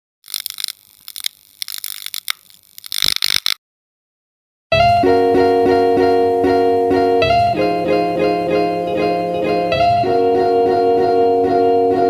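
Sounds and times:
crackling high-pitched hiss: 0.2 - 3.6
sharp clicks: 0.2 - 3.6.

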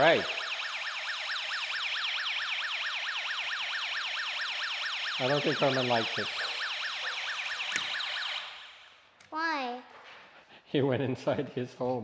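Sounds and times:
electronic siren warbling: 0.0 - 8.8.

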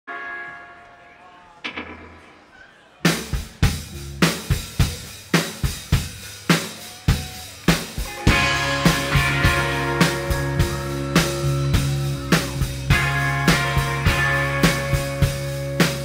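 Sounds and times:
drum kit beat: 1.6 - 16.0.

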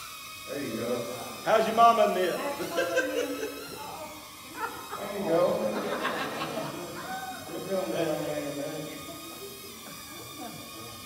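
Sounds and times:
people talking and laughing: 0.5 - 11.0.

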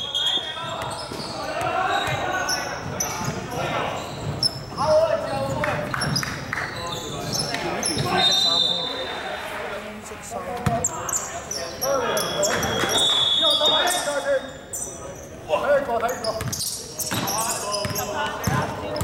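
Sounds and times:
players calling out: 0.0 - 19.0.

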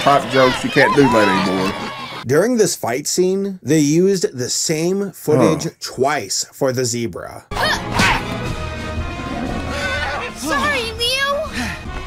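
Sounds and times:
background music: 0.0 - 2.3, 7.5 - 12.0.

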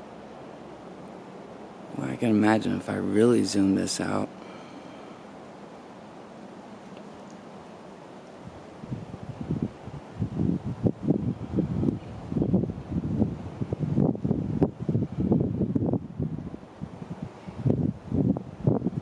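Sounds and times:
wind buffeting microphone: 8.4 - 19.0.

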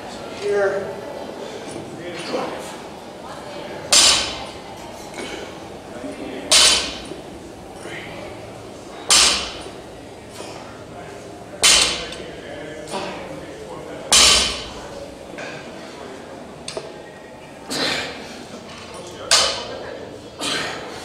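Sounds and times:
barbell thudding on rubber floor: 3.9 - 4.5, 6.5 - 7.2, 9.1 - 9.8, 11.6 - 12.2, 14.1 - 14.8
barbell plates knocking: 6.5 - 7.2, 9.1 - 9.7.

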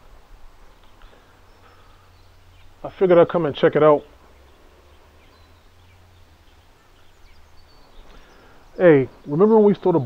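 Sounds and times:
distant bird chirps: 0.0 - 10.0.

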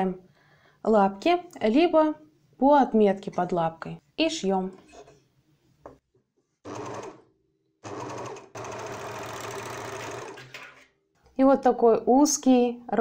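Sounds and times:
overlocker sewing: 6.6 - 10.8.

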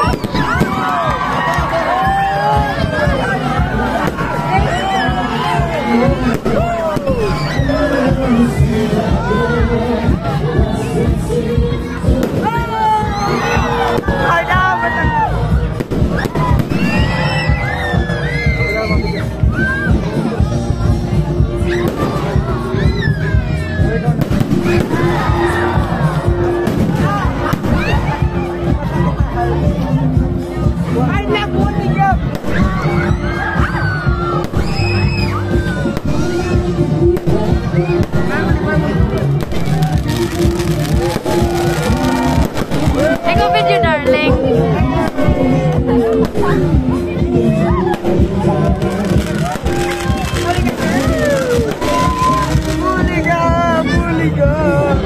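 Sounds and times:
fireworks bursting: 0.0 - 1.0, 3.9 - 4.7, 6.1 - 8.4, 15.8 - 17.6, 21.8 - 22.6, 24.1 - 25.6, 26.5 - 28.2, 34.4 - 43.8, 47.9 - 53.2
crowd voices: 0.0 - 55.0
music: 0.0 - 55.0.

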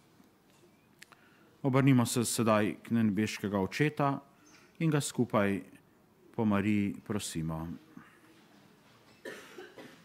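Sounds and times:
faint cough: 9.1 - 10.0.

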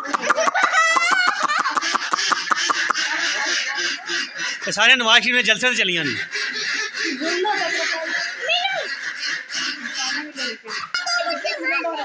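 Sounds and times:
ducks and chickens calling: 0.0 - 12.0
voices: 0.0 - 12.0.

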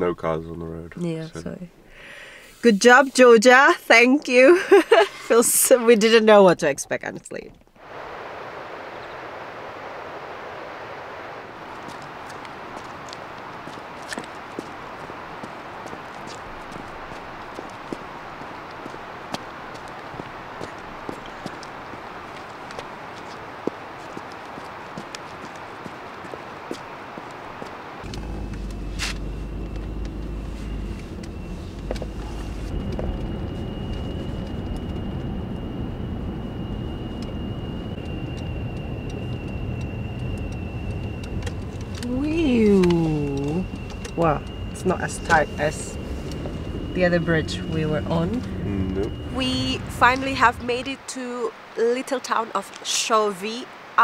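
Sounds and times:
engine and road rumble: 0.0 - 54.0
steady high whine: 7.6 - 54.0
steady hiss: 7.8 - 33.2
boots on asphalt: 11.8 - 34.2
person speaking: 47.4 - 51.0.

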